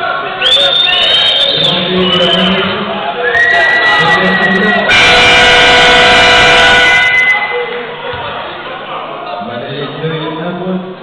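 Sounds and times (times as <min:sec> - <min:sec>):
arena horn blast: 0:04.8 - 0:07.4.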